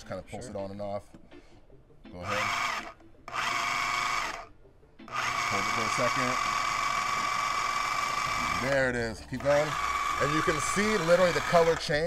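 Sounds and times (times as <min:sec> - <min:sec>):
food processor motor whine: 0:02.2 - 0:04.5, 0:05.1 - 0:12.0.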